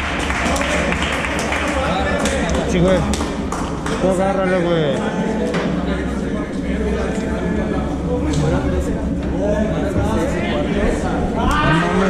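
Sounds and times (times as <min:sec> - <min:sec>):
steady low hum: 0:00.0 - 0:12.0
people talking indistinctly: 0:00.4 - 0:12.0.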